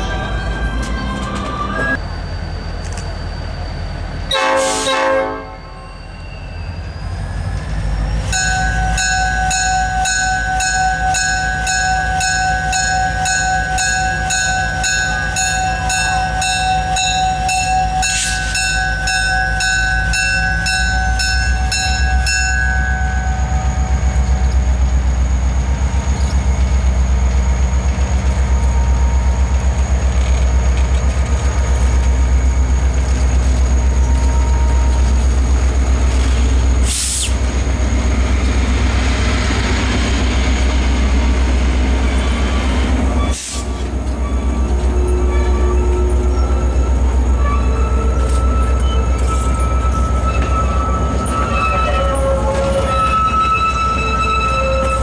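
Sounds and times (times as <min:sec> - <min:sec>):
locomotive horn toot: 0:04.3 - 0:05.8, 0:43.2 - 0:55.0
locomotive bell ringing: 0:05.4 - 0:30.1, 0:44.0 - 0:55.0.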